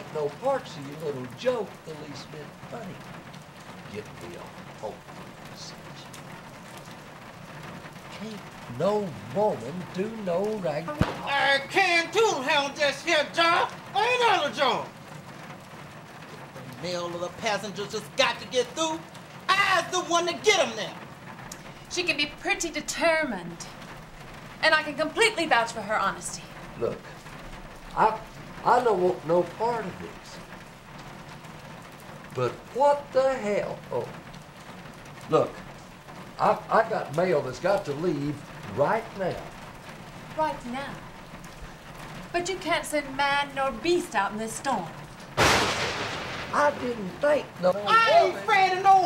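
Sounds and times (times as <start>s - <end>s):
steady rain falling: 0.0s - 49.0s.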